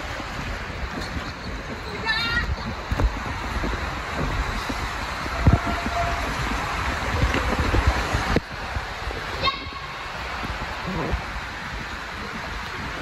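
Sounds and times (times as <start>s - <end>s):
rushing water: 0.0s - 13.0s.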